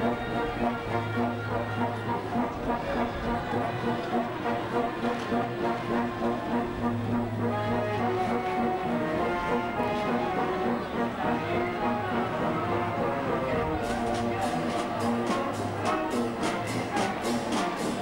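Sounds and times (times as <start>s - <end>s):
long low brass note: 0.0s - 14.1s
marching brass band playing: 0.0s - 18.0s.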